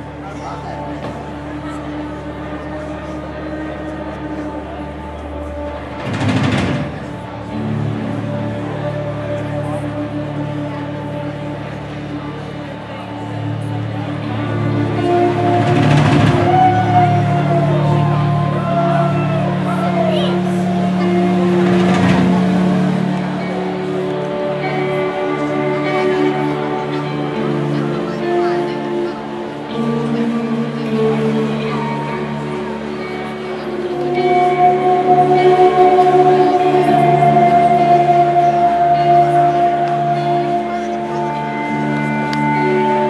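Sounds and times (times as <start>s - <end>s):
amplified rock guitars droning: 0.0s - 43.0s.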